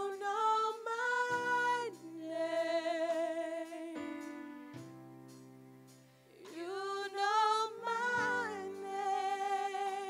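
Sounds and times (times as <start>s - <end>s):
women singing gospel: 0.0s - 4.4s, 6.3s - 10.0s
soft instrumental backing: 0.0s - 10.0s.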